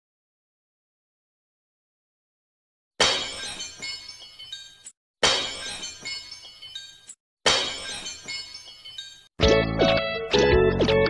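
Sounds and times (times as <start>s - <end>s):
glass shattering: 3.0s - 9.3s
tinkling glass fragments: 3.1s - 9.3s.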